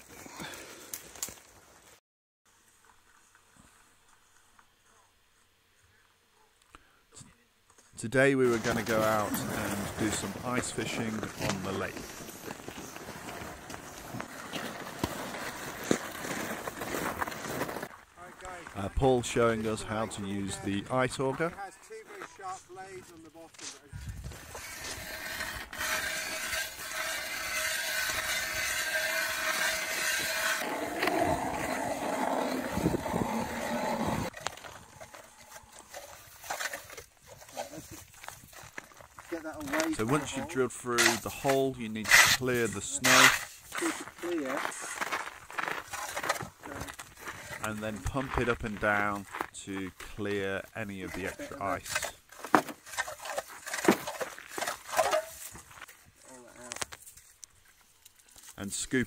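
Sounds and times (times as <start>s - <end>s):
ice auger grinding through ice: 8.5s - 17.9s, 24.2s - 37.9s, 39.6s - 47.9s, 50.8s - 55.6s
auger knocks and scrapes: 51.0s - 55.7s.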